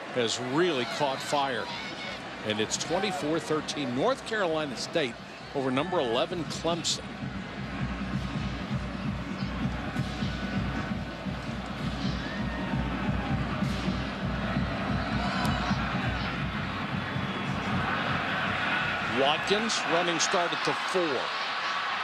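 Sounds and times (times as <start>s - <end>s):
music playing: 0.0s - 22.0s
stadium crowd noise: 0.0s - 22.0s.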